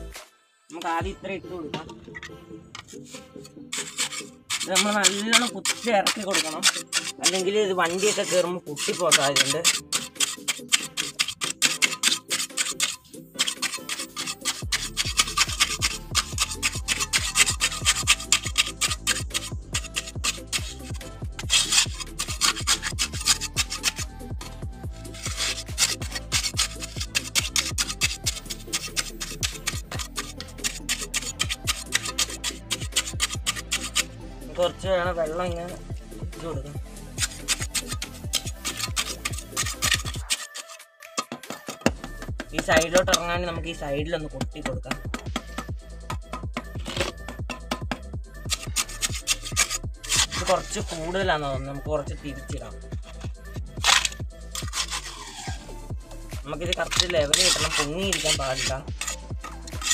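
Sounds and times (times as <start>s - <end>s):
trowel scraping wet concrete: 1.8s - 35.8s, 36.4s - 59.9s
background music with fast beat: 2.8s - 59.9s
music with kick-drum beat: 41.8s - 43.4s, 44.0s - 49.1s, 52.8s - 54.5s, 55.9s - 56.5s.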